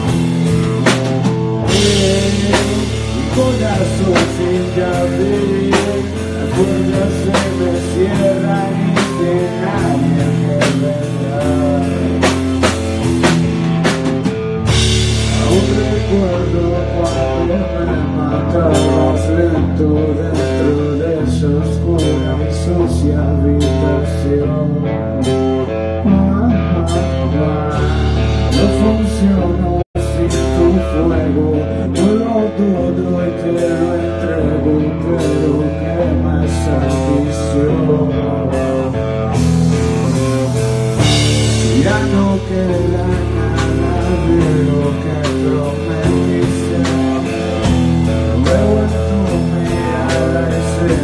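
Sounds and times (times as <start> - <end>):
drums and cymbal hits: 0.0 - 24.1, 26.8 - 34.2, 35.0 - 51.0
bass notes: 0.0 - 51.0
electric guitar line: 0.0 - 51.0
rock band playing: 0.0 - 51.0.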